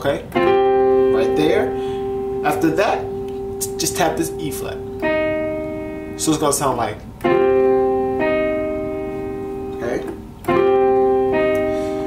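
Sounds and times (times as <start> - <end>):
keyboard piano chord and note: 0.0 - 12.0.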